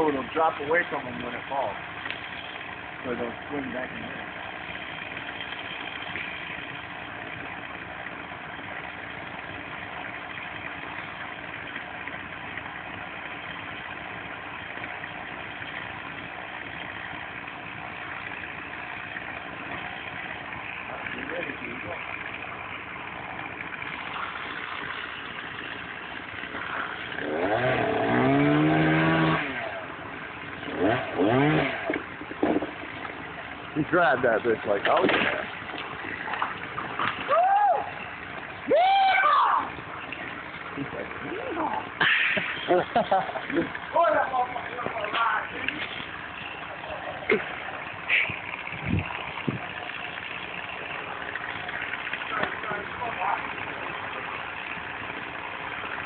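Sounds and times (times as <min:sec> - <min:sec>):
engine idling: 0:00.0 - 0:56.0.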